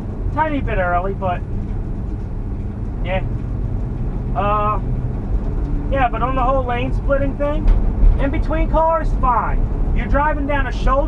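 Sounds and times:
engine and road noise in van: 0:00.0 - 0:11.0.

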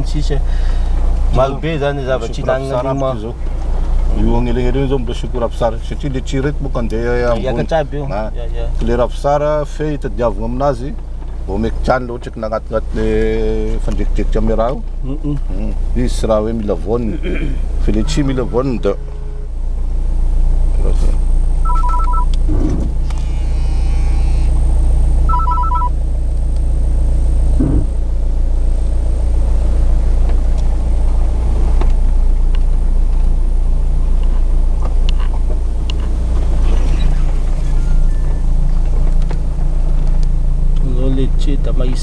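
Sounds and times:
car engine and road rumble: 0:00.0 - 0:42.0
two-note electronic beeps: 0:17.9 - 0:19.4, 0:21.6 - 0:22.3, 0:25.3 - 0:25.9.

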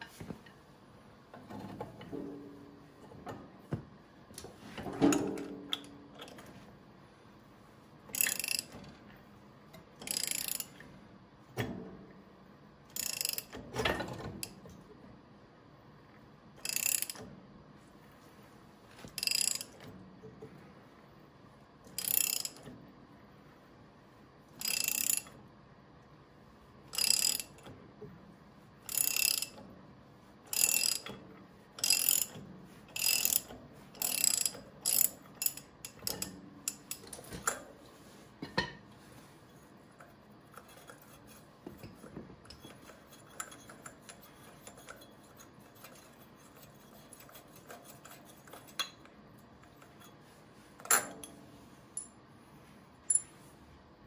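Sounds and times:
ratchet wrench clicking: 0:08.1 - 0:08.7, 0:10.0 - 0:10.8, 0:12.9 - 0:13.6, 0:16.6 - 0:17.3, 0:19.2 - 0:19.7, 0:22.0 - 0:22.6, 0:24.6 - 0:25.4, 0:26.9 - 0:27.6, 0:28.9 - 0:29.6, 0:30.5 - 0:31.2, 0:31.8 - 0:32.4, 0:33.0 - 0:37.5.

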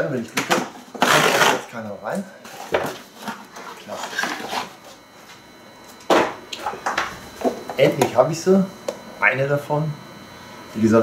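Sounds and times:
plastic packaging and cardboard rustling: 0:02.4 - 0:05.1.

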